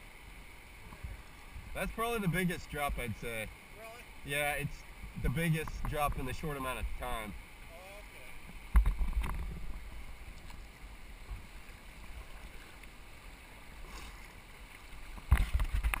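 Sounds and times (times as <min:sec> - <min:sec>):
low bumps on kayak: 0:08.4 - 0:11.6, 0:15.1 - 0:16.0
paddle splashing in water: 0:11.4 - 0:13.1, 0:13.7 - 0:16.0.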